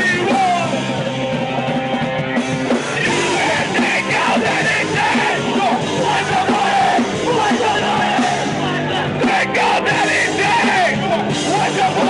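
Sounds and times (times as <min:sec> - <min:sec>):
punk rock band playing: 0:00.0 - 0:12.0
shouted vocals: 0:02.9 - 0:12.0.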